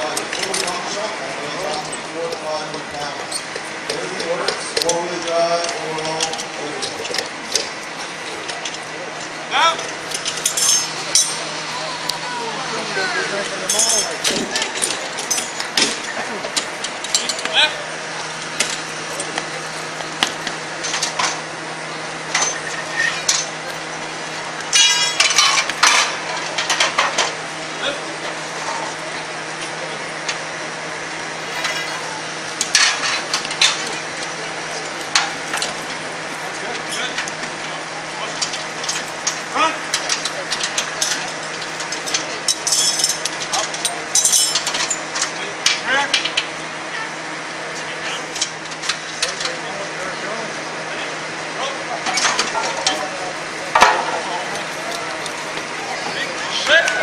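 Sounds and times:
murmur of voices: 0:00.0 - 0:57.0
steady hum: 0:00.0 - 0:57.0
metal parts clinking and knocking: 0:09.9 - 0:11.4, 0:13.7 - 0:17.5, 0:22.3 - 0:27.3, 0:31.4 - 0:37.4, 0:38.4 - 0:45.2, 0:53.7 - 0:56.2.

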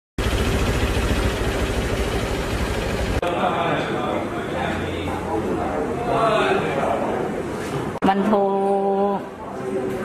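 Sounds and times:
engine idling rumble: 0:00.2 - 0:03.2.

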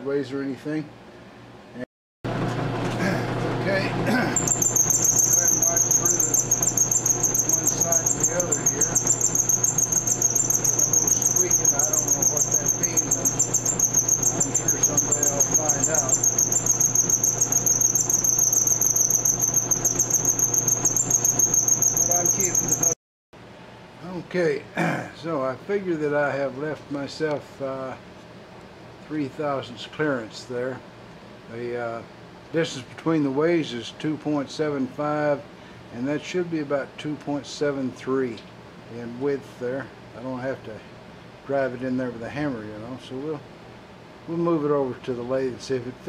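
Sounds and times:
motor humming: 0:02.3 - 0:23.0
high-pitched pulsing squeal: 0:04.4 - 0:23.0
milling cutter cutting metal: 0:04.4 - 0:23.0.

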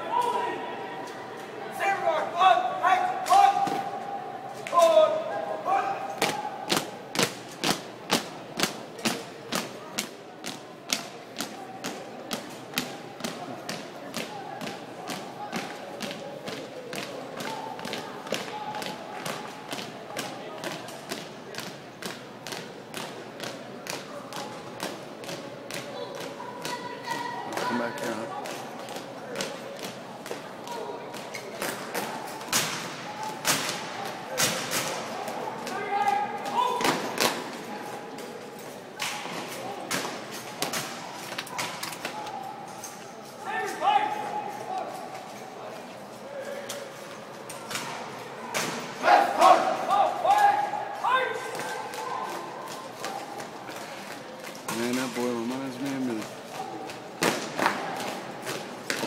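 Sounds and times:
murmur of voices: 0:00.0 - 0:59.0.

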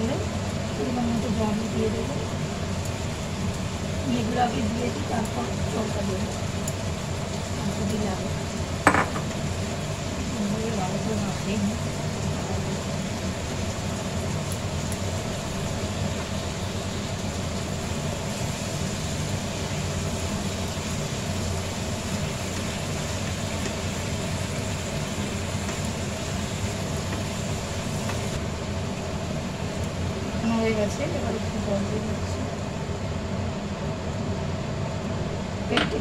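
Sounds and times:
steady hiss with low hum: 0:00.0 - 0:36.0.

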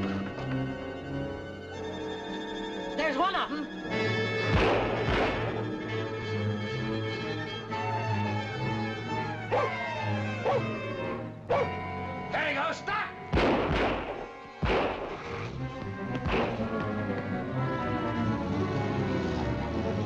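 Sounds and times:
orchestral film music: 0:00.0 - 0:20.0.

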